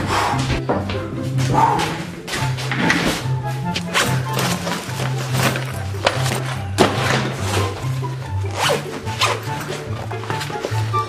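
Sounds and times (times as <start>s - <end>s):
background music with bass line: 0.0s - 11.0s
bag rustling: 1.5s - 11.0s
backpack zipper being pulled: 8.5s - 10.6s.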